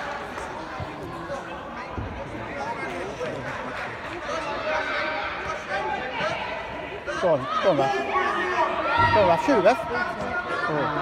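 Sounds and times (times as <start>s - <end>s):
players and spectators calling: 0.0s - 11.0s.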